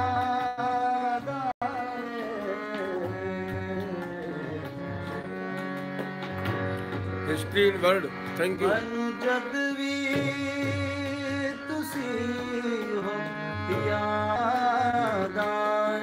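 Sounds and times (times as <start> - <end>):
person singing: 0.0 - 5.1, 8.6 - 16.0
instrumental accompaniment: 0.0 - 16.0.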